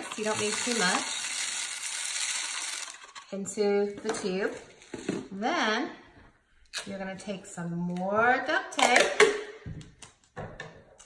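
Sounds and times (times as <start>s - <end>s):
rice grains pouring: 0.0s - 3.0s.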